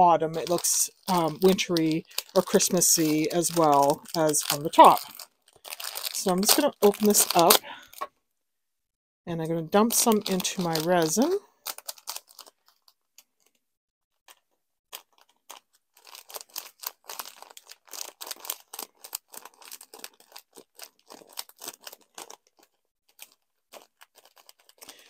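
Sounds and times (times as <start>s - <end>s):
plastic bag crinkling: 0.1s - 8.1s, 9.8s - 13.6s, 14.3s - 25.0s.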